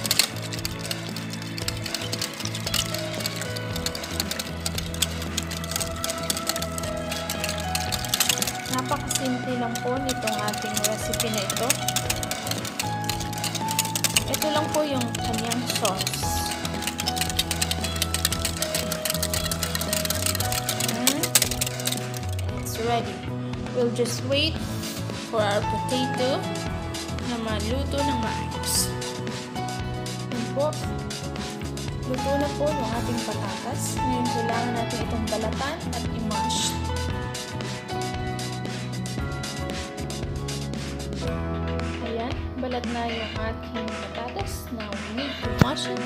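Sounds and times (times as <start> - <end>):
whisk clicking against glass bowl: 0.0 - 22.6
background music with bass: 0.0 - 46.0.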